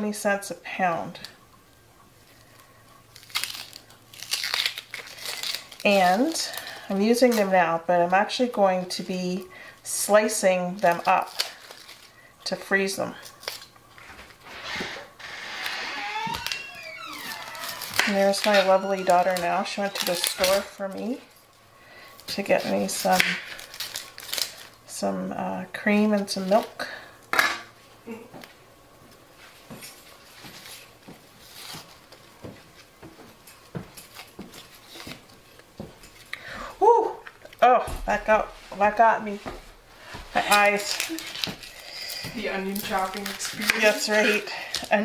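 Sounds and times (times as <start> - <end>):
onion skins rustling and crackling: 2.2 - 27.4, 28.4 - 45.0.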